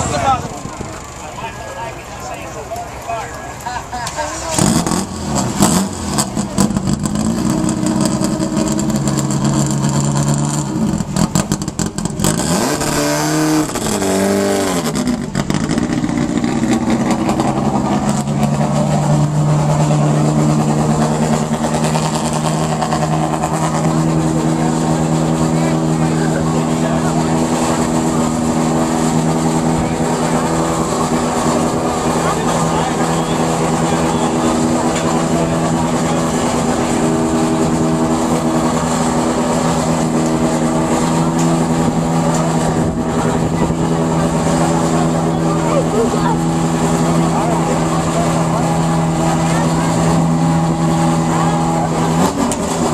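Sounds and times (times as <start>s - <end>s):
off-road vehicle engines running: 0.0s - 52.9s
engine revving: 4.1s - 52.9s.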